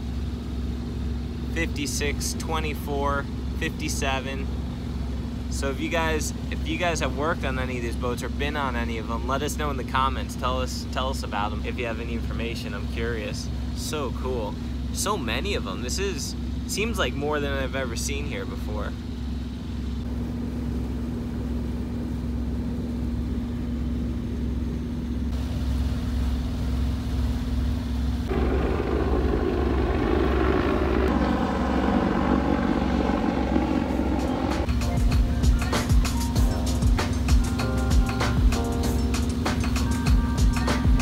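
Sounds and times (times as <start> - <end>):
boat engine droning: 0.0 - 41.0
background music with beat: 34.2 - 41.0.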